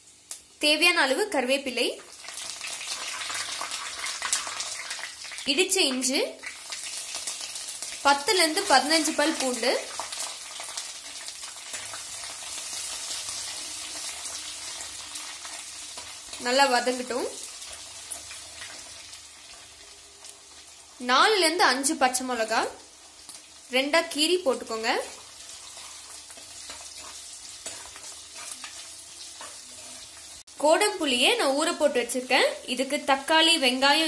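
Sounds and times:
oil sizzling in a clay pot: 0.0s - 34.0s
spoon stirring: 25.6s - 30.1s.

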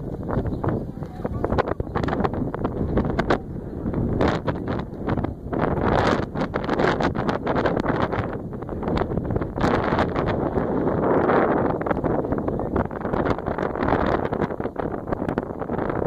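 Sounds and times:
crackling rumble: 0.0s - 16.0s
wind buffeting microphone: 0.0s - 16.0s.

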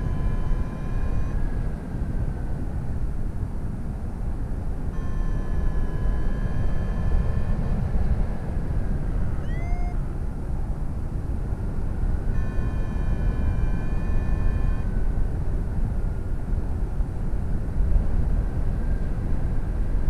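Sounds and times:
steady high tone: 0.0s - 2.0s, 4.9s - 10.1s, 12.3s - 15.1s
short rising chirp: 9.4s - 10.0s.

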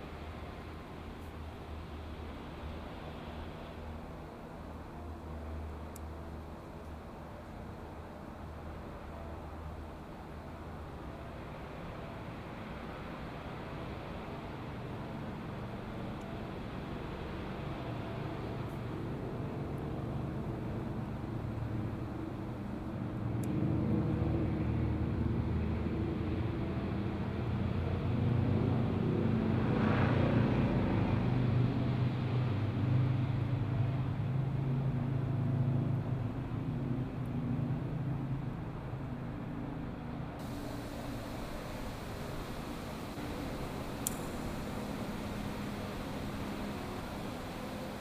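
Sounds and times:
passing vehicle engine drone: 40.4s - 48.0s.

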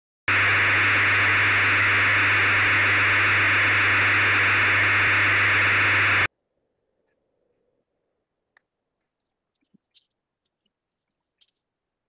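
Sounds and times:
low hum: 0.3s - 6.3s
radio static hiss: 0.3s - 6.3s.

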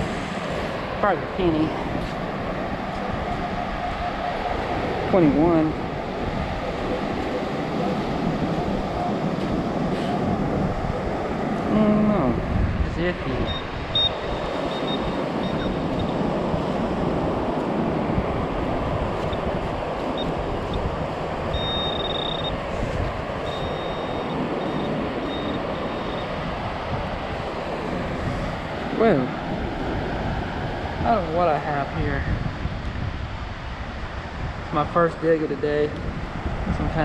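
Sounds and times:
wind: 0.0s - 37.0s
metal detector high tone: 13.4s - 16.2s, 21.5s - 22.6s, 23.4s - 26.3s.

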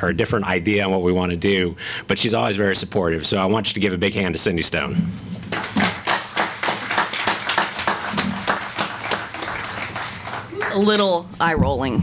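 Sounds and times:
audience applauding: 5.5s - 11.1s.

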